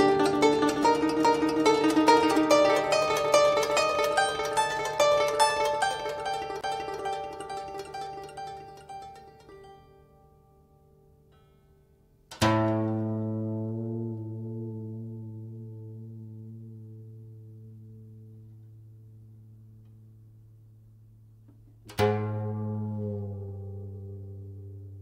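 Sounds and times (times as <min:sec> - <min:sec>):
plucked zither chords: 0:00.0 - 0:20.4, 0:21.4 - 0:25.0.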